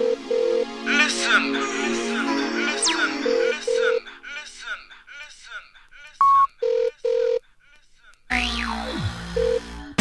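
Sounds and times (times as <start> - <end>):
telephone-style electronic beeps: 6.2 - 7.4.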